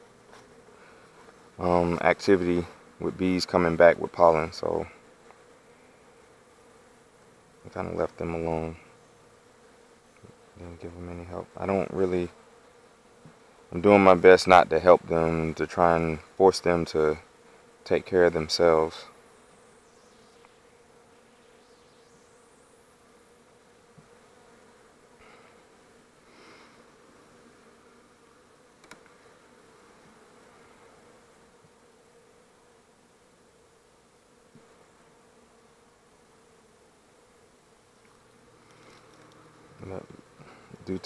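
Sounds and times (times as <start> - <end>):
honeybees humming: 0.0 - 41.0
small click: 28.8 - 29.2.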